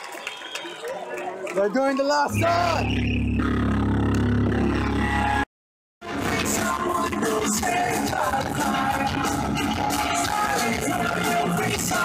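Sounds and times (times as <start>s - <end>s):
low bass rumble: 2.3s - 5.5s.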